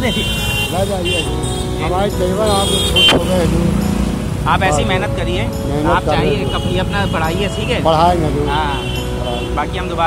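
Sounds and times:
road traffic rumble: 0.0 - 10.0
voices: 0.0 - 10.0.

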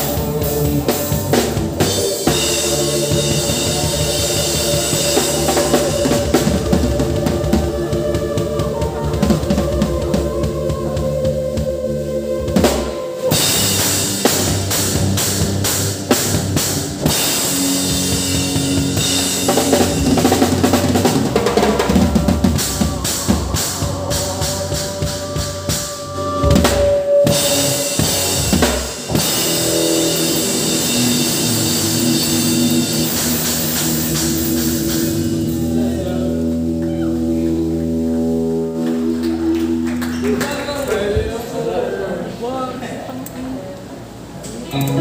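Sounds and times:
bass and electric guitar: 0.0 - 41.6, 43.1 - 45.0
drum kit hits: 12.6 - 41.4.

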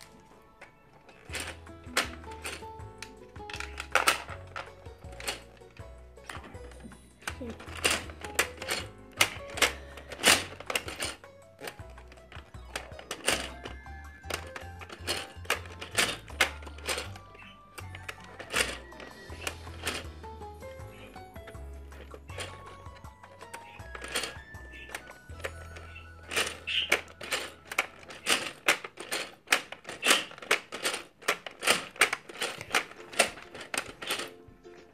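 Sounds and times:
plastic toy clicking: 0.0 - 34.9.

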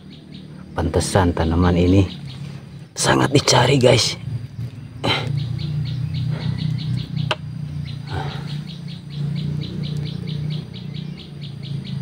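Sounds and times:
bird chirping rapidly: 0.0 - 12.0
low hum: 0.0 - 12.0.

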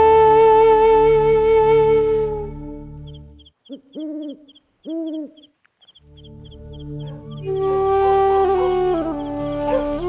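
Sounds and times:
background music: 0.0 - 4.4, 6.0 - 10.0
steady high chirping: 3.0 - 7.6
owl hooting: 3.0 - 7.7.

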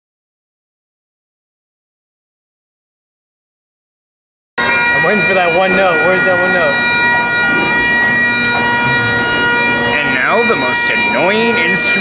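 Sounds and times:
bagpipes playing: 4.6 - 12.0.

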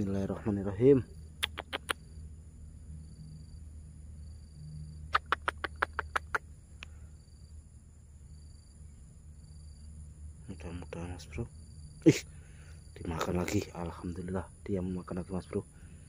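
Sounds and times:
high insect chirring: 0.0 - 16.0.

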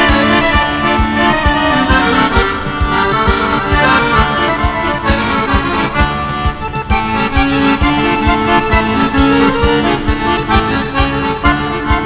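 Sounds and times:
accordion playing lively melody: 0.0 - 12.0
steady low beat: 0.0 - 12.0.

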